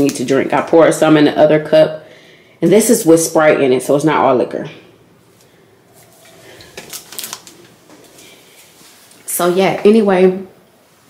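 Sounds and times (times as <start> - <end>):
soft rustling: 5.2 - 9.8.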